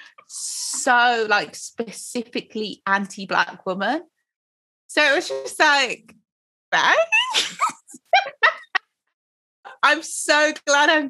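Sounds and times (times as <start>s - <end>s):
woman speaking: 0.0s - 4.1s, 4.9s - 6.2s, 6.8s - 8.8s, 9.7s - 11.0s
high-pitched giggling: 7.1s - 8.8s
women laughing: 7.1s - 8.8s.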